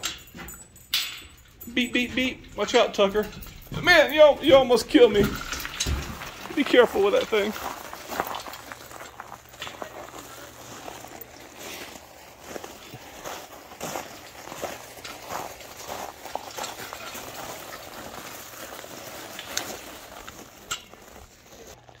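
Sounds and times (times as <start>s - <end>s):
cart wheels crunching on gravel: 2.6s - 22.0s
footsteps on gravel: 3.1s - 22.0s
clicks and knocks of stones: 3.4s - 22.0s.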